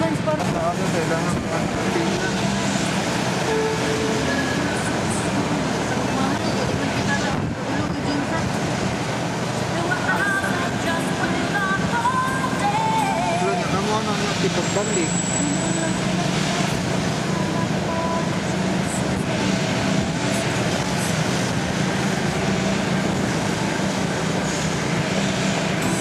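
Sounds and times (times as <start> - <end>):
vehicle engine and road noise: 0.0 - 26.0.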